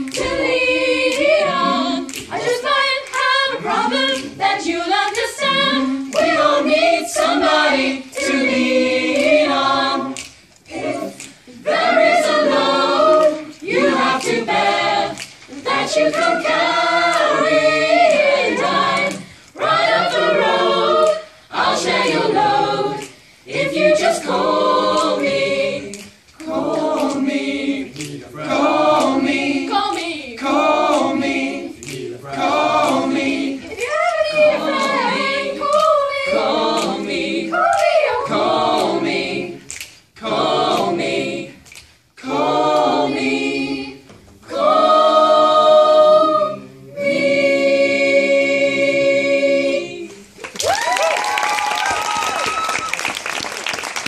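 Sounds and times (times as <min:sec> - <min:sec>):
mixed choir singing a cappella: 0:00.0 - 0:50.5.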